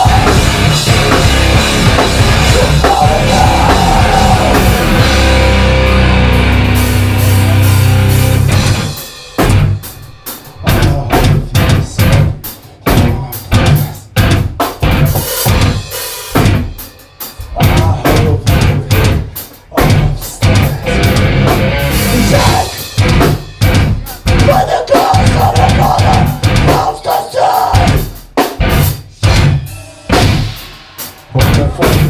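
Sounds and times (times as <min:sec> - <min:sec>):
metal band playing live: 0:00.0 - 0:32.0
sharp drum and guitar hits: 0:00.0 - 0:32.0.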